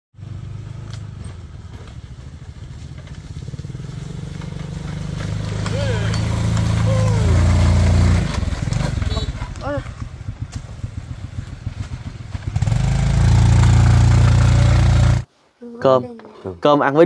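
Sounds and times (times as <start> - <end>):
small motorbike engines: 0.2 - 15.3.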